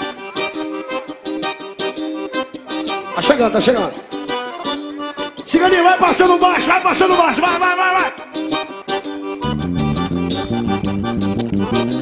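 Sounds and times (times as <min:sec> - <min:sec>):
melody notes: 0:00.0 - 0:12.0.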